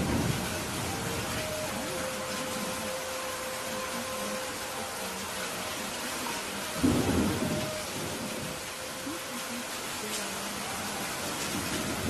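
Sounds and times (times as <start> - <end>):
thunder rumble: 0.0 - 2.0, 6.7 - 9.2, 11.3 - 12.0
steady rain: 0.0 - 12.0.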